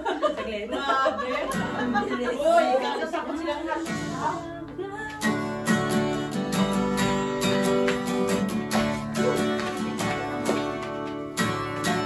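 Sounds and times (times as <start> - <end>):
women laughing: 0.0 - 3.8
women talking: 0.0 - 5.2
acoustic guitar strumming: 3.8 - 12.0.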